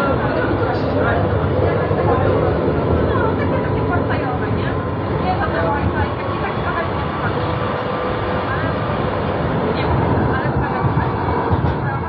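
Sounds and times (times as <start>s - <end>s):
people talking: 0.0s - 12.0s
tram rumbling on track: 0.0s - 12.0s.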